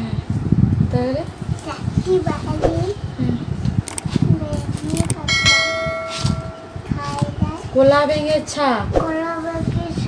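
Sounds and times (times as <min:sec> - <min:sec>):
notification bell ding: 0:05.3 - 0:06.8.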